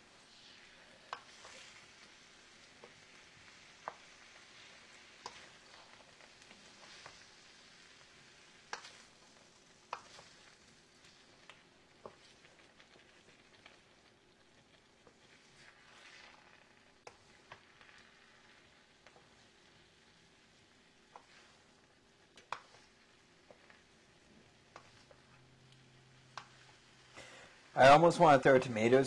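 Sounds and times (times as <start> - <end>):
food sizzling in a pan: 0.0 - 29.0
wooden spoon clicking on pan: 1.1 - 1.4, 5.2 - 5.6, 9.9 - 10.2, 22.4 - 22.9, 24.7 - 26.7.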